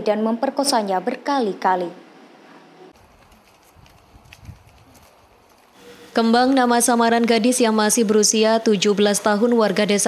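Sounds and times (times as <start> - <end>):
footsteps on pavement: 3.0 - 7.6.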